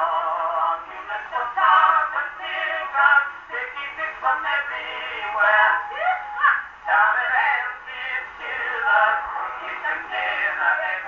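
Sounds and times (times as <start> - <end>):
male vocal duet: 0.0 - 11.0.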